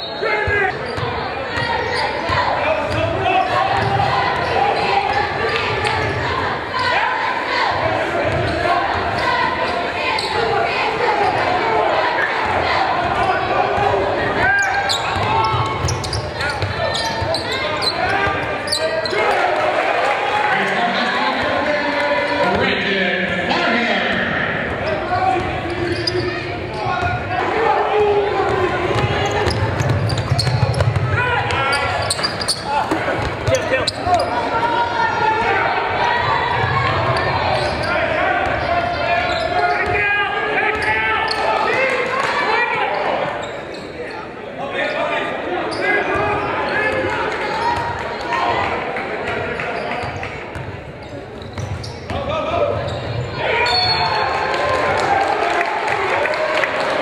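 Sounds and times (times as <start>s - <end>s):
voices of players and spectators: 0.0s - 57.0s.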